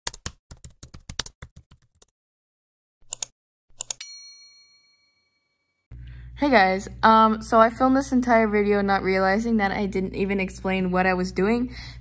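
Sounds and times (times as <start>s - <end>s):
computer keyboard typing: 0.1s - 2.1s.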